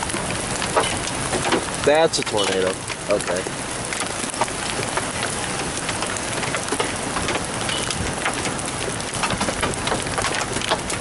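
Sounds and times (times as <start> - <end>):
heavy rain falling: 0.0 - 11.0.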